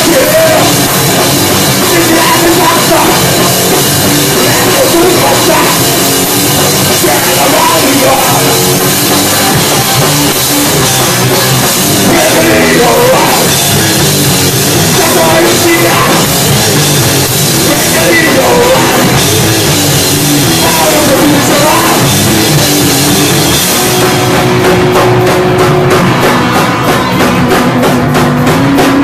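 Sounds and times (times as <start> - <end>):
bass guitar: 0.0 - 29.0
drum kit: 0.0 - 29.0
electric guitar: 0.0 - 29.0.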